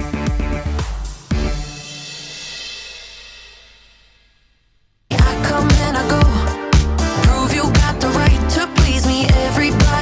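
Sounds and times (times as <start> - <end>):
cymbal crash: 1.1 - 4.7.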